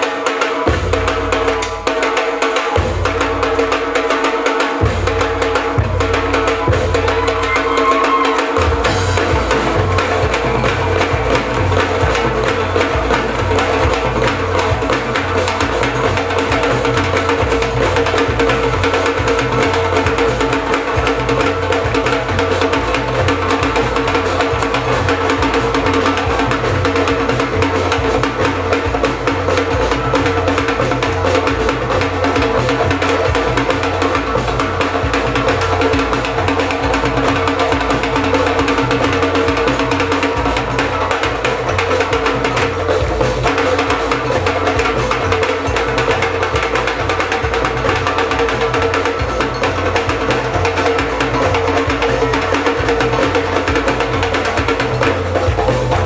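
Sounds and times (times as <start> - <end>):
drum kit and percussion: 0.0 - 56.0.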